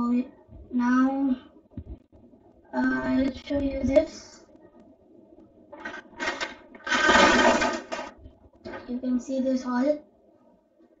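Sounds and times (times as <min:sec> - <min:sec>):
game pieces rattling in box: 0:05.8 - 0:08.1.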